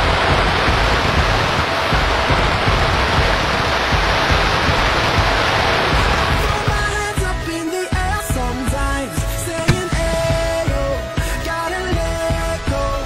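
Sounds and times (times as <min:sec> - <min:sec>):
fireworks hiss and crackle: 0:00.0 - 0:07.3
low thumps of bursting shells: 0:09.6 - 0:11.1.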